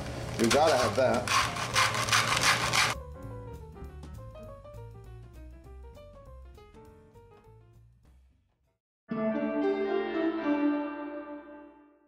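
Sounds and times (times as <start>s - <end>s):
rhythmic rubbing strokes: 0.4s - 3.0s
background music: 3.0s - 8.4s, 9.1s - 12.0s.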